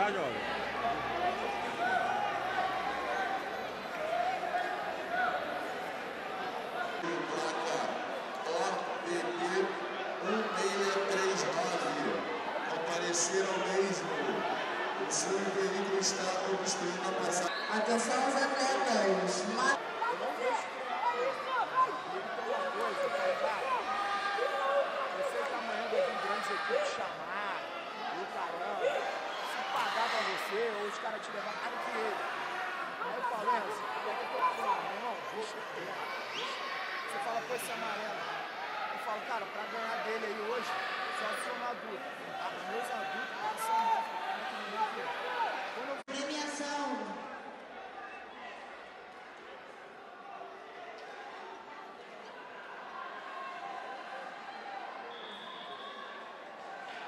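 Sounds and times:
crowd chattering in echoing hall: 0.0s - 57.0s.

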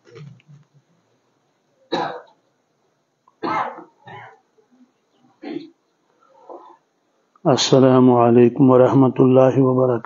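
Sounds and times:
man coughing into microphone: 1.9s - 2.4s, 3.4s - 4.4s.

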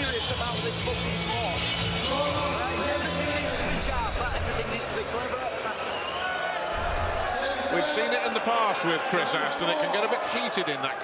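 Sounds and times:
music over loudspeakers: 0.0s - 5.6s
crowd hubbub: 2.9s - 9.6s.

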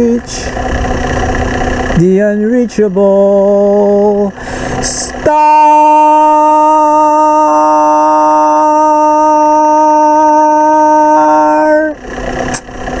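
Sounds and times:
man singing a long note: 2.0s - 12.0s
breathy noise: 4.3s - 4.9s.

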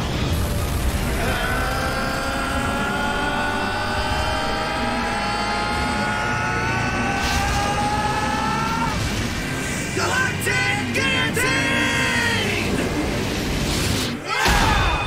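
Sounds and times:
rush of noise: 0.0s - 14.2s.

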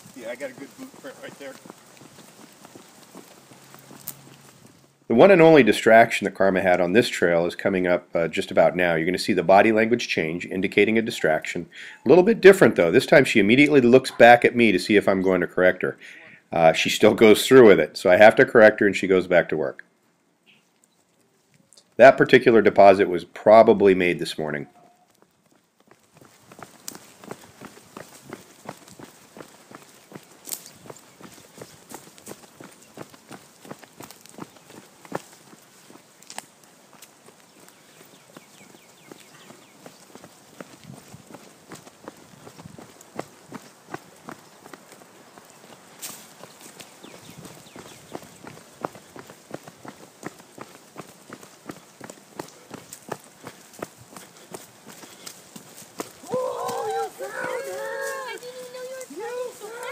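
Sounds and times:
soft quick footsteps: 0.0s - 5.3s, 24.7s - 59.9s.

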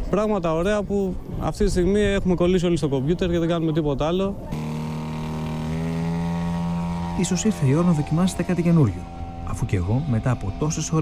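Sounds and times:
model airplane engine buzzing: 4.5s - 11.0s.

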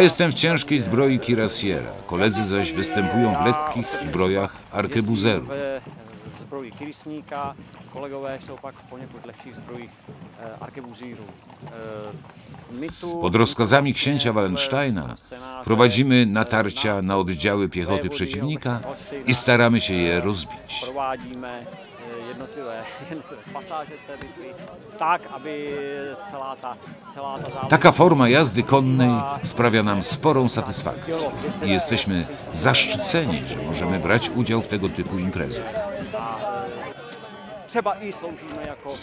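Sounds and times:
man speaking: 0.0s - 5.8s, 12.8s - 21.5s, 27.4s - 36.8s, 37.8s - 39.0s
indistinct talking voices: 0.0s - 39.0s
outdoor background noise: 0.0s - 39.0s.

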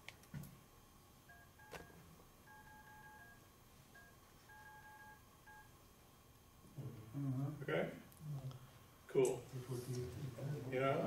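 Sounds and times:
faint phone beeps: 1.3s - 5.8s.

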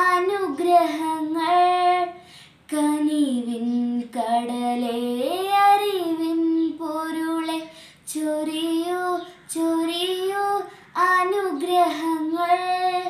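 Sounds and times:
girl singing a carol: 0.0s - 13.0s
singer breathing: 2.2s - 2.6s, 7.7s - 8.1s.

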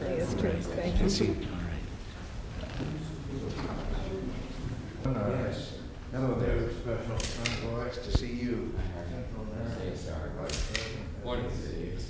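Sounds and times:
sharp clicks: 10.5s - 10.9s.

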